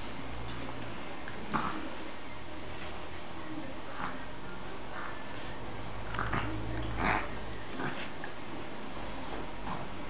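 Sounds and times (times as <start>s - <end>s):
dogs sniffing and breathing: 3.9s - 10.0s.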